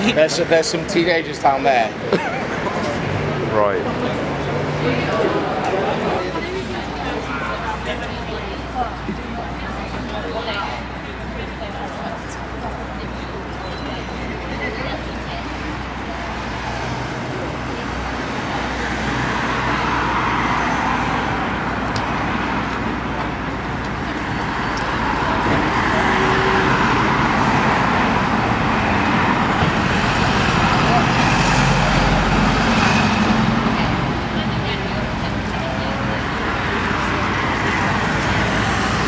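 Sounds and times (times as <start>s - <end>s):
indistinct voices: 0.0s - 39.0s.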